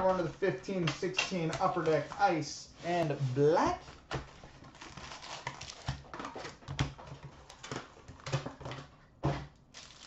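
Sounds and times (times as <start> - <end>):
rustling of foil packs and cardboard: 0.0 - 8.9, 9.7 - 10.0.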